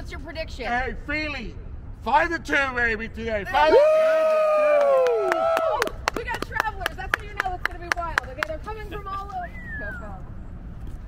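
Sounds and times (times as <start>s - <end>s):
person shouting woo: 3.6s - 5.9s
people clapping: 4.2s - 8.6s.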